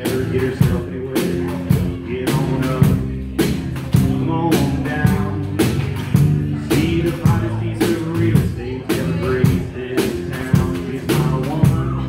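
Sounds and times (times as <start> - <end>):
acoustic guitar: 0.0 - 12.0
drum kit beat: 0.0 - 12.0
upright double bass: 0.0 - 12.0.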